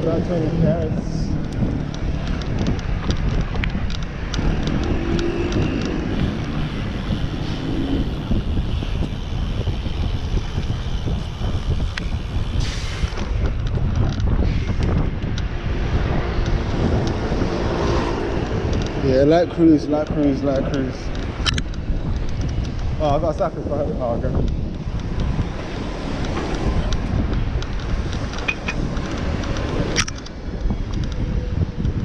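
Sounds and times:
road and traffic rumble: 0:00.0 - 0:32.0
wind buffeting microphone: 0:00.0 - 0:32.0
small clicks: 0:00.7 - 0:07.6, 0:20.0 - 0:23.6, 0:24.4 - 0:32.0.

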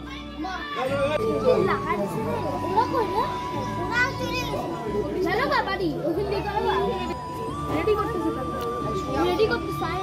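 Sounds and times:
children calling and playing: 0:00.0 - 0:10.0
music: 0:00.0 - 0:10.0
people talking: 0:00.1 - 0:10.0.

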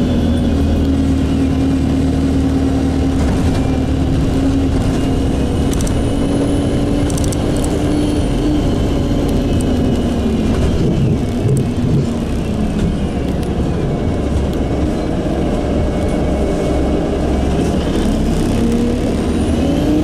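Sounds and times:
bus engine and drivetrain: 0:00.0 - 0:20.0.

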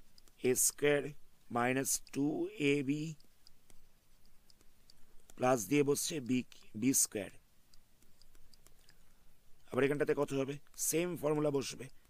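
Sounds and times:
stylus tapping on pen tablet: 0:03.2 - 0:05.5, 0:07.7 - 0:09.0.

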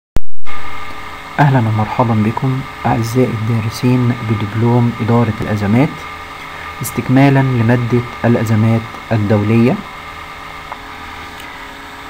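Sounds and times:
background hum and hiss: 0:00.5 - 0:12.0.

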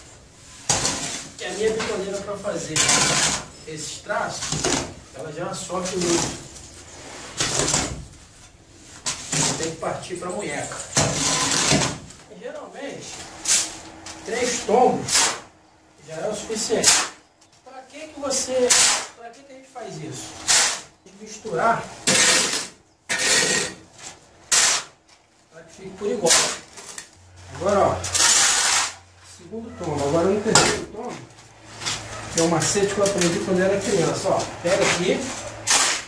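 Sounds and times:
shovel scraping concrete and sand: 0:00.5 - 0:05.0, 0:05.6 - 0:08.1, 0:08.9 - 0:12.0, 0:13.0 - 0:15.5, 0:16.6 - 0:17.2, 0:18.4 - 0:19.2, 0:20.2 - 0:25.0, 0:26.0 - 0:29.1, 0:29.9 - 0:36.0.

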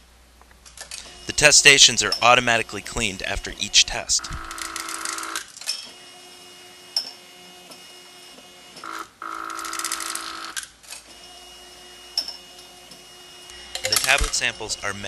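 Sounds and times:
motor whine: 0:04.2 - 0:09.6.

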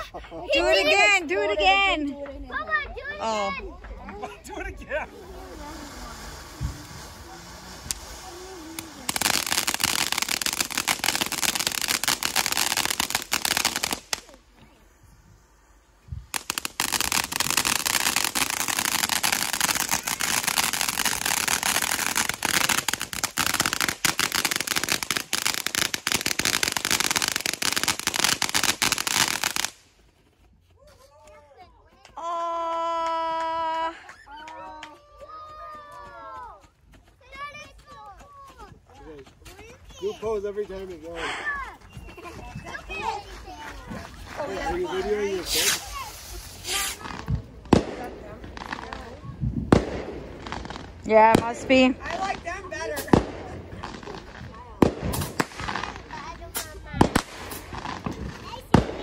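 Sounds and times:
fireworks crackling: 0:00.1 - 0:30.2, 0:39.5 - 0:59.0.

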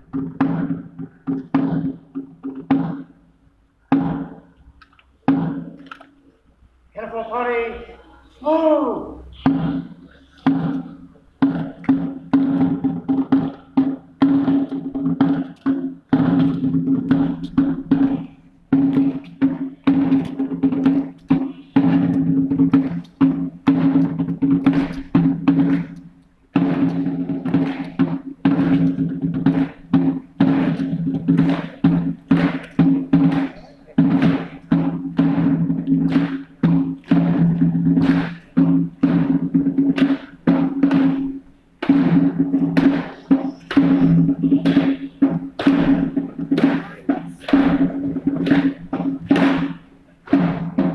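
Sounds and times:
military drum rolls: 0:00.0 - 0:03.2, 0:08.5 - 0:50.9.

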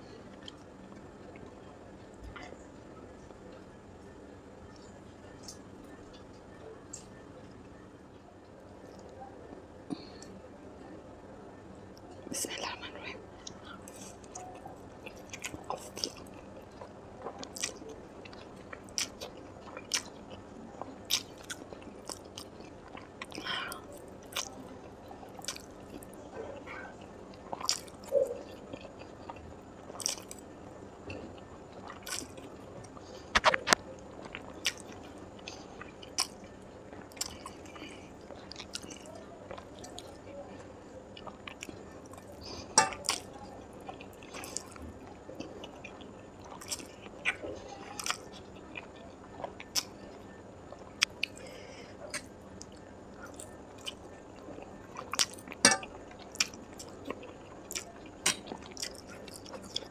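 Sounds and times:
wet chewing and slurping: 0:31.1 - 0:32.4, 0:55.0 - 0:59.9.

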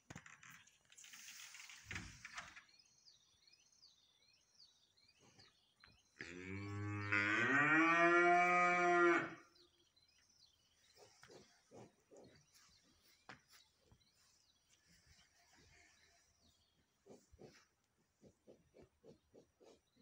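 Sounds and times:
cow mooing: 0:06.2 - 0:09.4.

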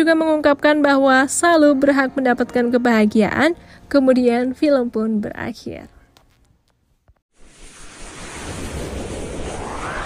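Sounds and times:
rising whoosh: 0:07.4 - 0:10.0.

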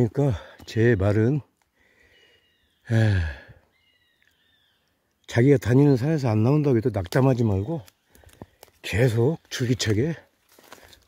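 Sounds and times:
man sighing: 0:02.9 - 0:03.6.

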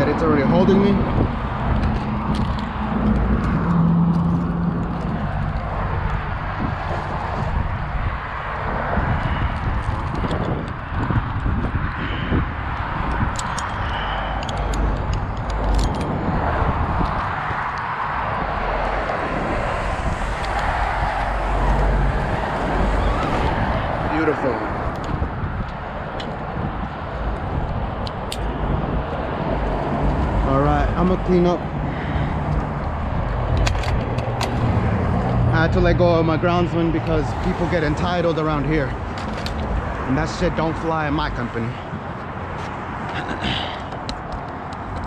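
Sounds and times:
road traffic rumble: 0:00.0 - 0:45.0.

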